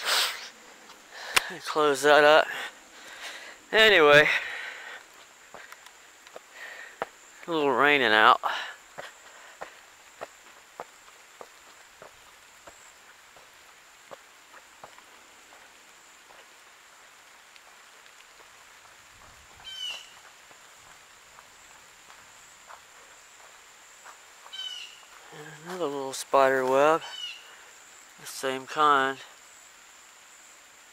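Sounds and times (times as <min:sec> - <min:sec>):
footsteps on dry leaves: 0:08.9 - 0:27.3
bird call: 0:19.6 - 0:20.2, 0:24.5 - 0:25.1, 0:27.0 - 0:27.5.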